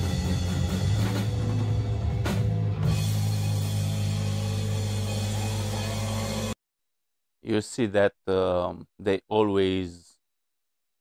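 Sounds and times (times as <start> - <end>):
distorted guitar and bass chord: 0.0 - 6.6.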